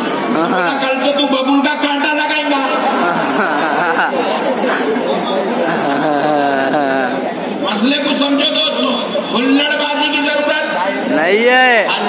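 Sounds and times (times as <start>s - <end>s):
voices chattering: 0.0s - 12.0s
man speaking into a microphone: 0.3s - 12.0s.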